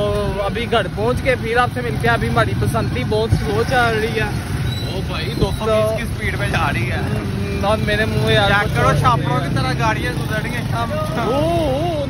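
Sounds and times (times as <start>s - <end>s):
men talking: 0.0s - 12.0s
vehicle running with road noise: 0.0s - 12.0s.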